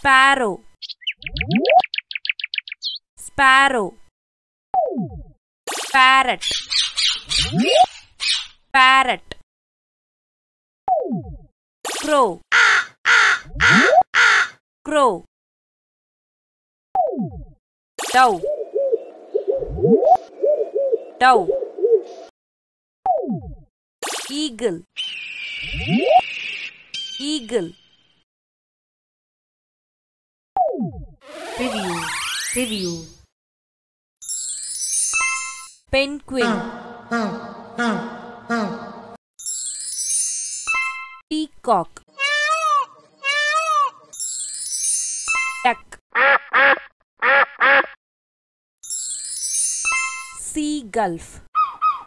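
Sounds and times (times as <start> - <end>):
duck quacking: 12.6 - 14.6, 36.4 - 39.2, 46.2 - 48.0
dove cooing: 18.3 - 22.3, 36.4 - 39.2.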